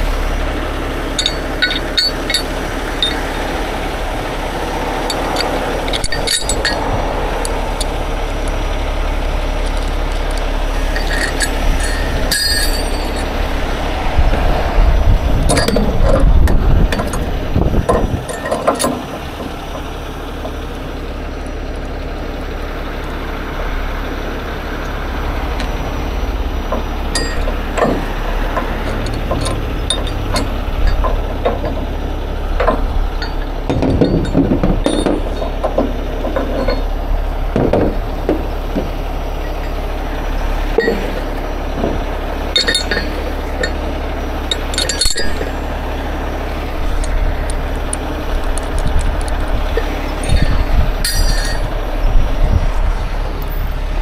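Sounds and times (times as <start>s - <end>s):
truck engine running: 0.0s - 54.0s
metallic chain clinks: 1.2s - 3.5s, 5.0s - 8.0s, 9.7s - 13.4s, 17.9s - 19.1s, 27.1s - 31.8s, 32.6s - 36.9s, 40.8s - 41.4s, 42.5s - 43.9s, 44.5s - 45.7s, 49.8s - 51.7s.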